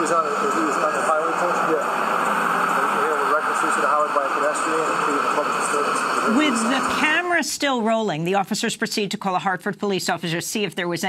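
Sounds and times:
men talking muffled: 0:00.0 - 0:02.0, 0:02.7 - 0:07.2
highway traffic noise: 0:00.0 - 0:07.4.

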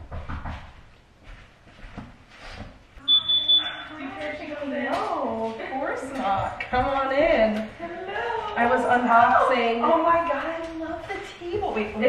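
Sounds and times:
high-pitched electronic beep: 0:03.0 - 0:03.9.

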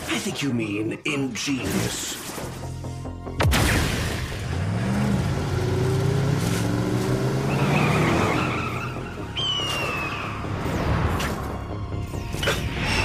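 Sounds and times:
tyres skidding: 0:04.4 - 0:10.7.

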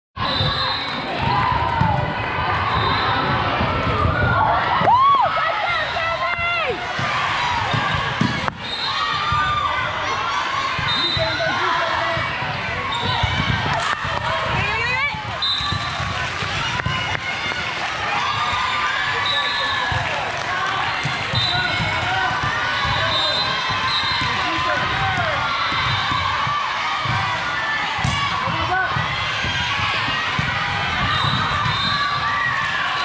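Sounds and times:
voices calling and echoing: 0:05.3 - 0:17.5, 0:19.1 - 0:32.2
ball bouncing on gym floor: 0:06.4 - 0:08.6, 0:12.1 - 0:17.4, 0:20.9 - 0:27.4, 0:28.0 - 0:32.4
overlapping voices: 0:13.4 - 0:25.9.

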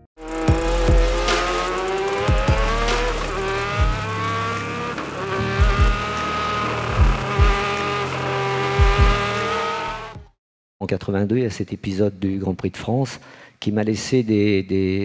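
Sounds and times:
racing car engine accelerating: 0:00.2 - 0:10.2.

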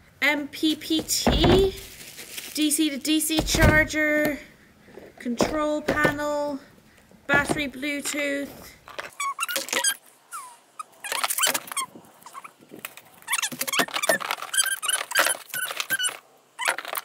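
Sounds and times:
dog whining and yelping: 0:09.2 - 0:12.5.

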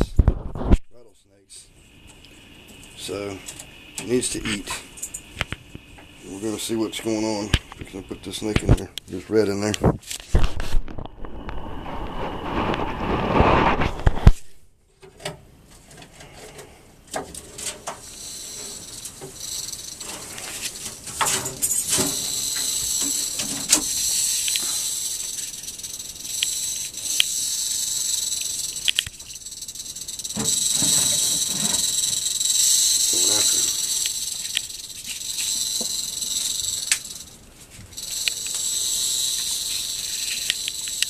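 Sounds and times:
rattlesnake rattling its tail: 0:01.8 - 0:14.4, 0:16.2 - 0:41.0.

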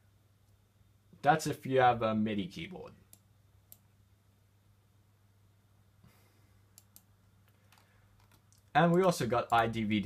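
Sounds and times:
computer mouse clicks: 0:03.1 - 0:03.9, 0:06.7 - 0:09.6.

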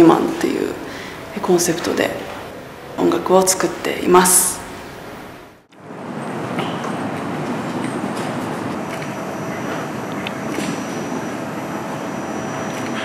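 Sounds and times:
faint steady whine: 0:00.0 - 0:13.0
low rumbling street noise: 0:00.0 - 0:13.0.

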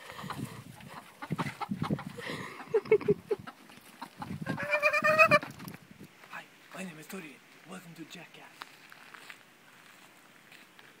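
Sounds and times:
chickens clucking: 0:00.0 - 0:05.7.

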